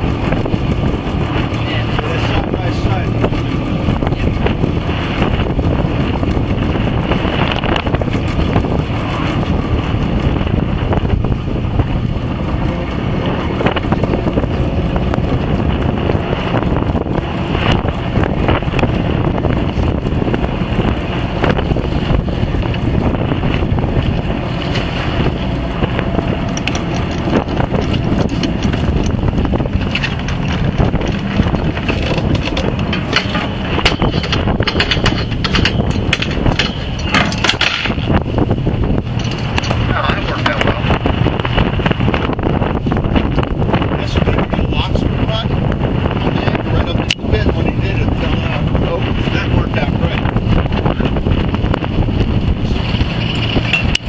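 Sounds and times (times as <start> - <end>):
boat engine running: 0.0 - 54.0
wind buffeting microphone: 0.0 - 54.0
anchor chain knocking and rattling: 22.5 - 38.4, 39.0 - 40.8, 52.6 - 54.0.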